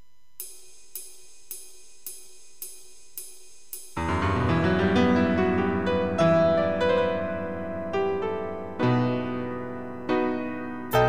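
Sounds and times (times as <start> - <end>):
hi-hat ticks: 0.4 - 4.0.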